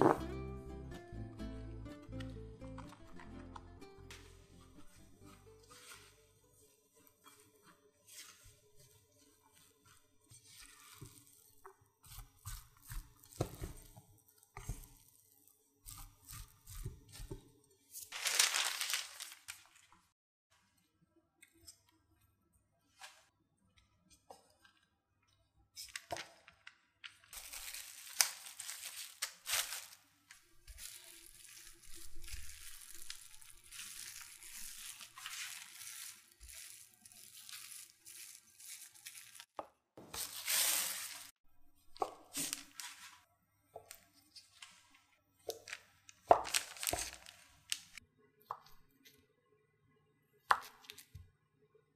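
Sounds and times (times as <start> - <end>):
rolling pin rolling over plastic wrap: 4.2 - 17.4, 27.4 - 41.4
spatula scraping potato: 4.5 - 18.1
plastic cling wrap crinkling: 17.2 - 20.1, 27.0 - 41.4, 45.5 - 48.0.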